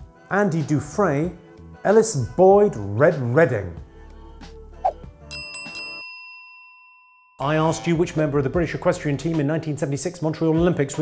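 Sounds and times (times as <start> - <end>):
bell ringing: 5.3 - 7.4.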